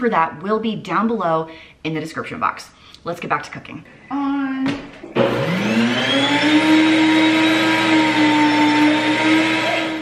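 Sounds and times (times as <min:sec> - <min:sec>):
electric grain mill whirring: 0:05.2 - 0:10.0.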